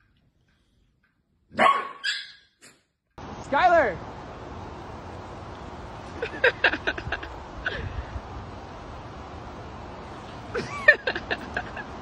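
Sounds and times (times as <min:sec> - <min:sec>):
dog barking loudly: 0:01.5 - 0:02.4.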